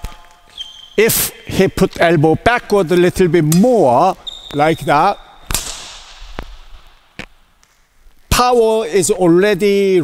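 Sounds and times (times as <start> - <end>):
sharp smack in sports hall: 5.4 - 6.8.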